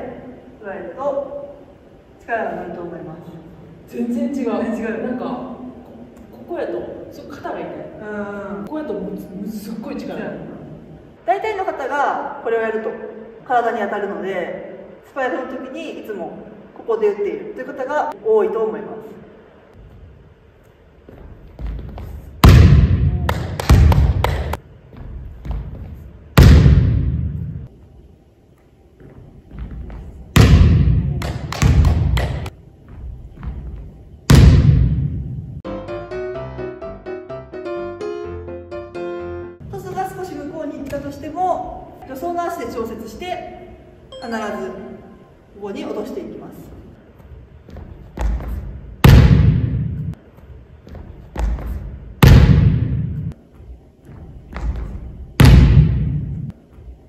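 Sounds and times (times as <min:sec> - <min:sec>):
volleyball slammed onto gym floor: 0:22.4 - 0:24.6, 0:26.4 - 0:27.6, 0:30.4 - 0:32.5, 0:34.3 - 0:35.3, 0:49.0 - 0:50.2, 0:52.2 - 0:53.3, 0:55.4 - 0:56.5
ball bouncing: 0:29.6 - 0:35.2.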